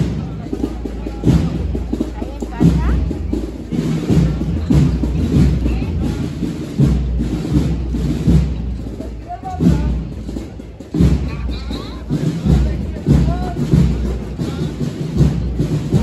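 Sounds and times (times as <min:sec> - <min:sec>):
bass drum strokes: 0:00.0 - 0:16.0
crowd talking: 0:00.0 - 0:16.0
drums beating a slow march: 0:00.0 - 0:16.0.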